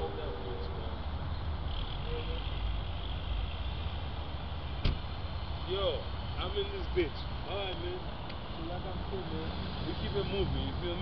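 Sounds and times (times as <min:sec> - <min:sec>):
car door shutting: 0:04.8 - 0:05.1.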